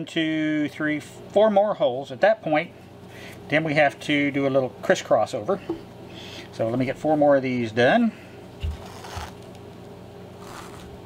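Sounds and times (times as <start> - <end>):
steady low hum: 0.0 - 11.0
thread swishing through leather: 8.7 - 9.4, 10.4 - 10.9.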